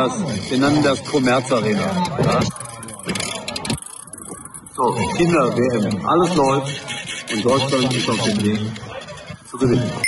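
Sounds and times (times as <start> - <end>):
faint indistinct voices: 0.0 - 10.0
man talking: 4.8 - 6.8.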